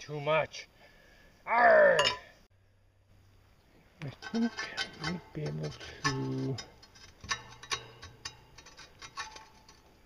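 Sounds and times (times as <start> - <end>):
person speaking: 4.0 - 6.8.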